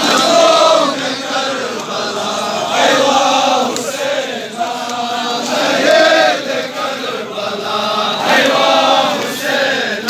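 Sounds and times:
crowd of men chanting: 0.0 - 10.0.

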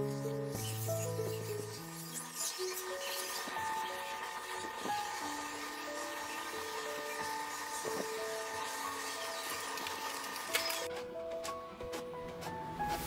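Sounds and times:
inkjet printer motors whirring: 0.6 - 10.9.

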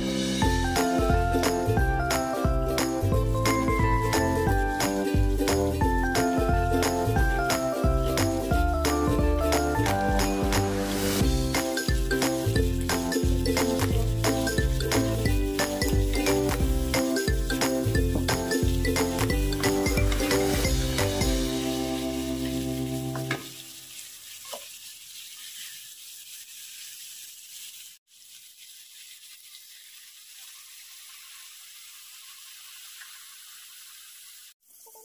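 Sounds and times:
background music: 0.0 - 23.4
shrimp sizzling in a wok: 0.0 - 35.0
wooden spatula stirring: 11.5 - 16.3, 17.1 - 30.0.

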